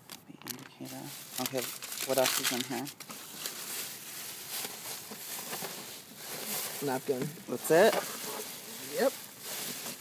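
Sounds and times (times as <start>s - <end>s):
plastic trash bags rustling: 0.8s - 10.0s.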